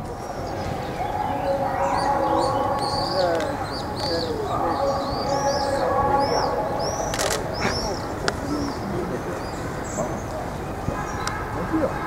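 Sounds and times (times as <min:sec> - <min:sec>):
small birds chirping: 0:00.0 - 0:11.4
people talking: 0:00.0 - 0:12.0
sharp clicks: 0:07.1 - 0:07.5.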